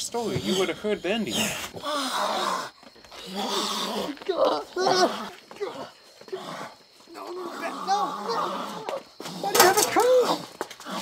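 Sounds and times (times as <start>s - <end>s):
person growling and groaning: 1.3s - 11.0s.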